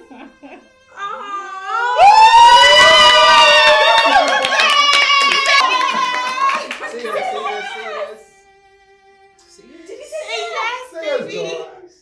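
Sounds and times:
high-pitched screaming: 0:01.4 - 0:06.7
people clapping: 0:02.1 - 0:08.1.

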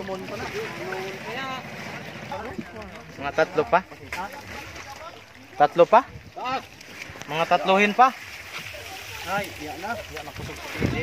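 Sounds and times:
people calling and talking: 0:00.0 - 0:11.0
wind on microphone: 0:05.8 - 0:11.0.

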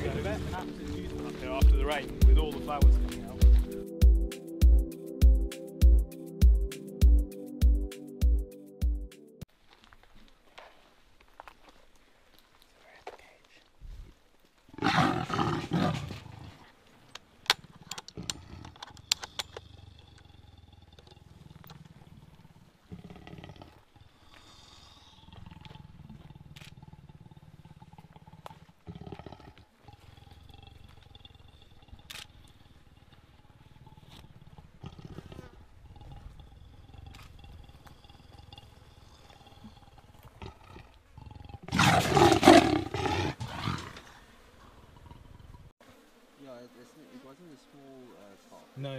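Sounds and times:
leopard growling: 0:14.7 - 0:45.7.

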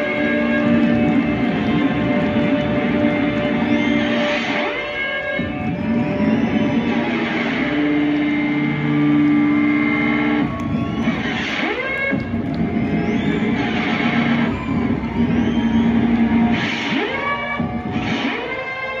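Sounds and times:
electric guitar feedback and noise: 0:00.0 - 0:19.0.

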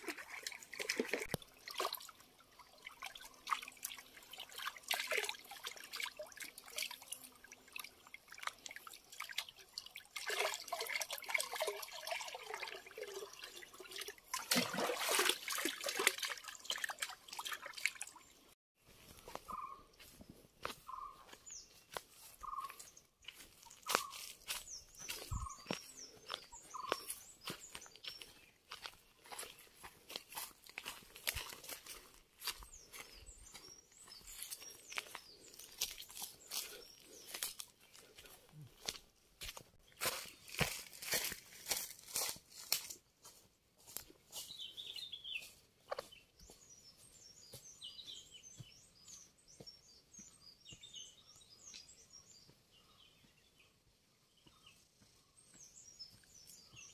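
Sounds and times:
footsteps crunching through dry leaves: 0:18.9 - 0:46.2
high bird chirping: 0:19.5 - 0:19.9, 0:20.8 - 0:29.7.

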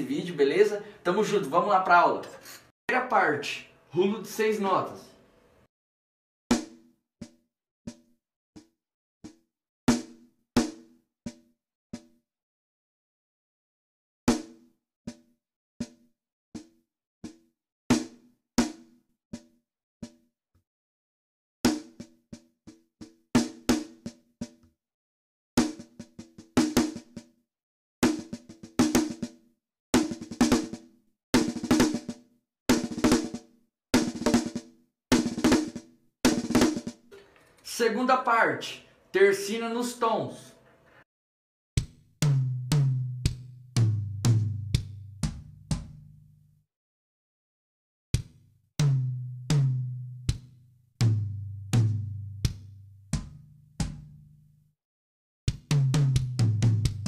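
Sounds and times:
drum fill on snare and toms: 0:06.5 - 0:12.2, 0:14.3 - 0:20.2, 0:21.7 - 0:24.6, 0:25.6 - 0:27.3, 0:28.0 - 0:29.4, 0:30.0 - 0:37.5, 0:41.8 - 0:46.2, 0:48.2 - 0:54.3, 0:55.5 - 0:57.0.

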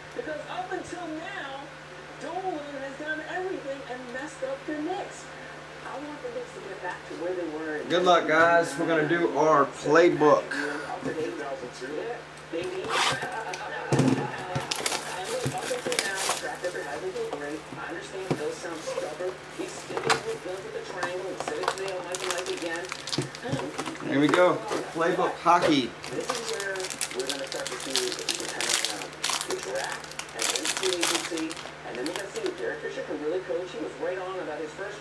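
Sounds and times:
plastic shrink wrap ripping: 0:14.4 - 0:17.8, 0:18.4 - 0:32.7.

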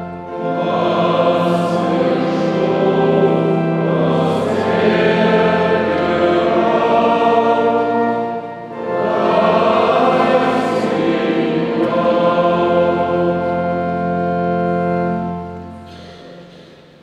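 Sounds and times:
choir singing sacred music: 0:00.0 - 0:17.0.

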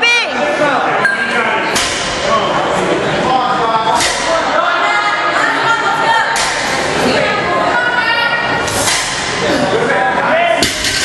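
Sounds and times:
crowd voices in a gym: 0:00.0 - 0:11.0
sharp crack: 0:04.0 - 0:04.4.

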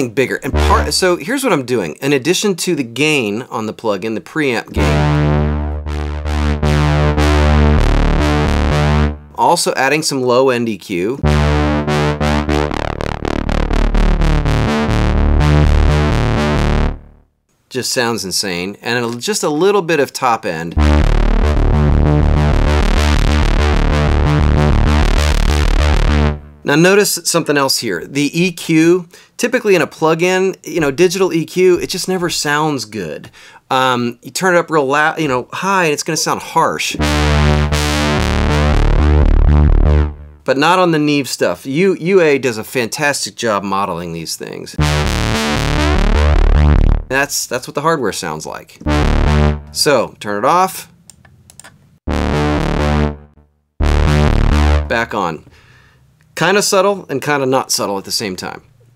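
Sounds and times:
synthesizer rhythmic bass line: 0:00.4 - 0:01.2, 0:04.8 - 0:09.4, 0:11.2 - 0:17.3, 0:20.7 - 0:26.7, 0:37.0 - 0:40.5, 0:44.8 - 0:47.2, 0:48.8 - 0:49.9, 0:52.1 - 0:55.2.

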